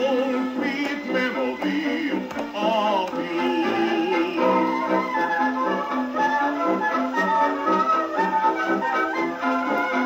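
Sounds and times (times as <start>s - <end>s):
jazz dance band on old record: 0.0s - 10.0s.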